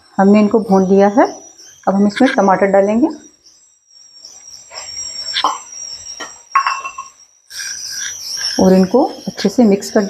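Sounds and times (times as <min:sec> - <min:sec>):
high-pitched whine: 0:00.0 - 0:10.0
spoon knocking on bowl and pan: 0:06.6 - 0:07.1.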